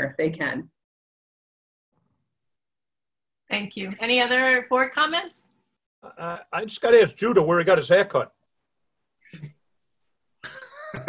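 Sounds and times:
cough-like vocal sound: 10.4s - 11.0s
people laughing: 10.4s - 11.0s.

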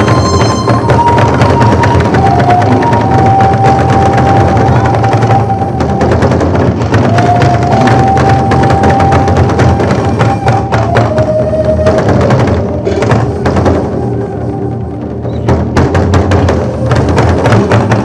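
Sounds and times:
long held melody notes: 0.0s - 15.8s
barrel drums rolling: 0.0s - 18.0s.

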